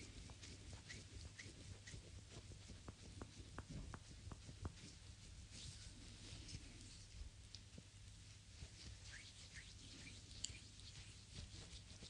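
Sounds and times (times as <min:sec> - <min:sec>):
oiled hands rubbing skin: 0:00.0 - 0:12.0.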